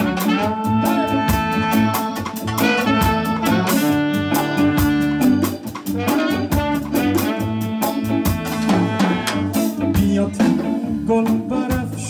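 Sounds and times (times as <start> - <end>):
horn section: 0.0 - 10.0
drums and percussion: 0.0 - 12.0
electric guitar: 0.0 - 12.0.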